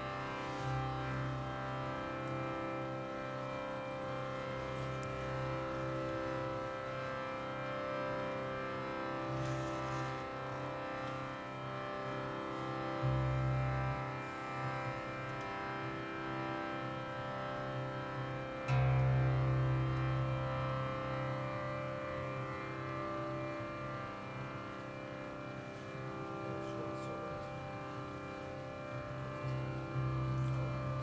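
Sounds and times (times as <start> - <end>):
harmonium drone chord: 0.0 - 31.0.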